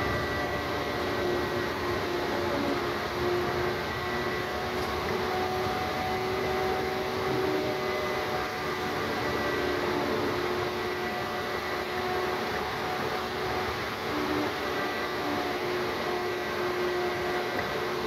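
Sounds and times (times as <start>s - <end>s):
bus road and engine noise: 0.0s - 18.0s
faint whining tones: 0.0s - 18.0s.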